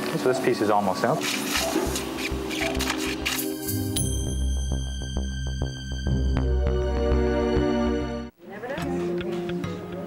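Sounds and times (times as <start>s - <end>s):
background music with pulsing beat: 1.2s - 8.3s.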